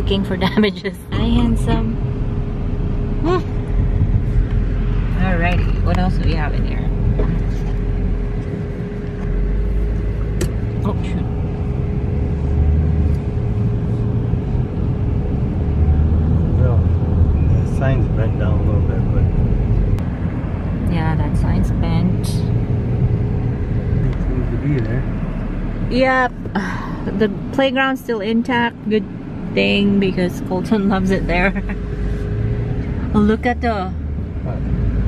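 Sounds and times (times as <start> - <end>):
car engine and tyres rumbling: 0.0 - 35.0.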